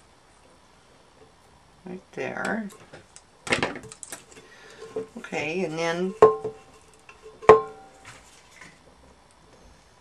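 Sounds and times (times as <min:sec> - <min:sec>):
tin can clicks and knocks: 0:06.2 - 0:06.7.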